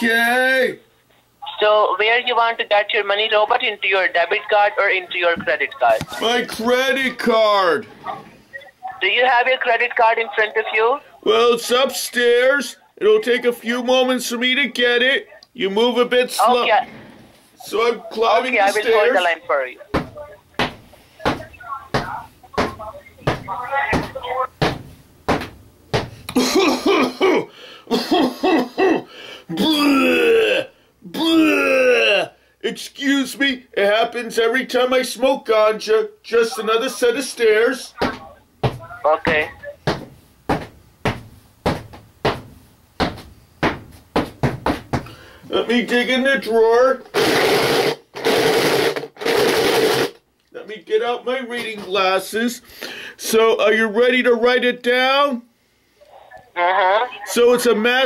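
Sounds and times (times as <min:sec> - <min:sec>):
person speaking: 0:01.4 - 0:17.0, 0:17.6 - 0:24.5, 0:33.6 - 0:40.0, 0:56.0 - 0:58.0
footsteps climbing stairs: 0:19.9 - 0:26.2, 0:38.0 - 0:45.2.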